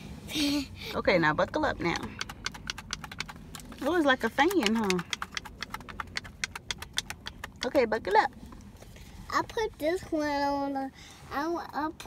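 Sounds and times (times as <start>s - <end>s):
rapid light clicks and taps: 1.4s - 8.7s.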